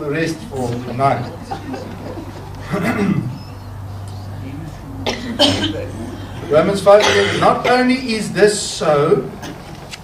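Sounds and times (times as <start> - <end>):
sound system hum: 0.0 - 9.7
person coughing: 2.7 - 3.2, 5.0 - 5.9, 7.0 - 7.8.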